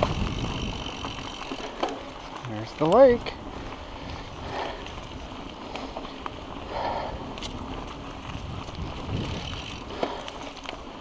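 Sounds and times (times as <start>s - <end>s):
bike clicks and knocks: 0.0s - 3.4s, 7.3s - 11.0s
bike tyres on leafy dirt: 0.0s - 11.0s.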